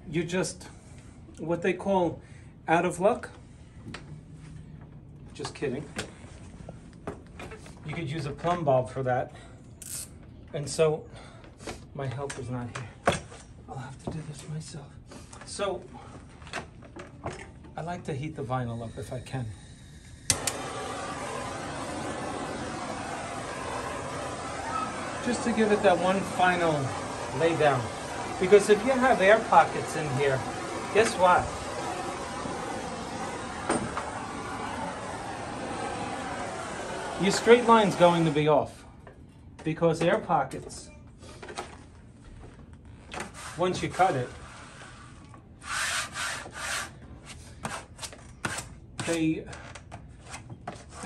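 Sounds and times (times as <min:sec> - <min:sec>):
torch flame hissing: 0:18.8 - 0:38.8
gas torch igniter click: 0:20.2 - 0:22.0.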